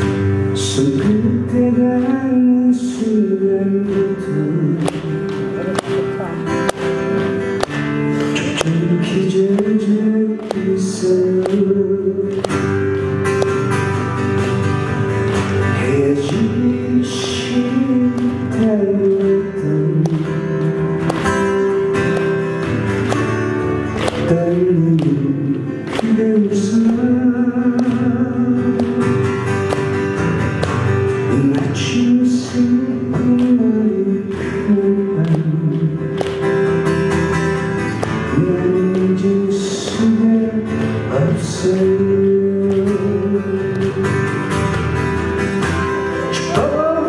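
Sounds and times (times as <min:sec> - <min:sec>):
man singing into microphone: 0:00.0 - 0:06.0, 0:08.2 - 0:12.8, 0:15.7 - 0:20.9, 0:24.0 - 0:29.5, 0:31.2 - 0:36.2, 0:38.2 - 0:44.5, 0:46.2 - 0:47.0
acoustic guitar strumming: 0:00.0 - 0:47.0.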